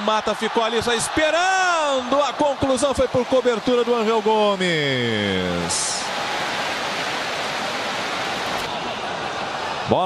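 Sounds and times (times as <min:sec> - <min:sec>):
stadium crowd voices: 0:00.0 - 0:10.0.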